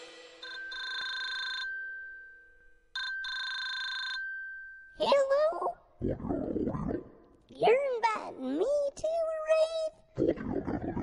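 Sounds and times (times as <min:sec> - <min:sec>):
electronic telephone ringing: 0:00.4 - 0:02.3, 0:02.9 - 0:04.7.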